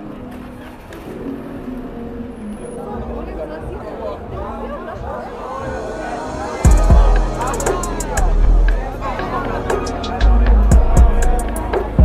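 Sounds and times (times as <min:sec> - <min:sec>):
people's voices: 0:00.0 - 0:12.0.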